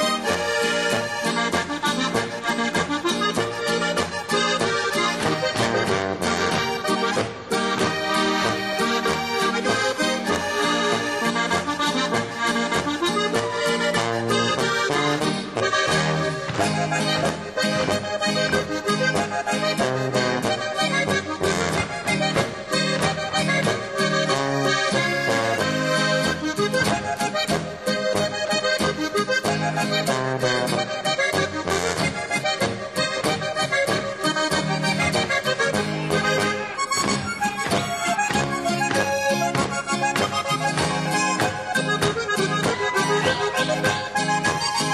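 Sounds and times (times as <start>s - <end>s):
button accordion melody: 0.0s - 44.9s
folk band playing dance tune: 0.0s - 44.9s
guitar: 0.0s - 44.9s
tuba bass: 0.0s - 44.9s.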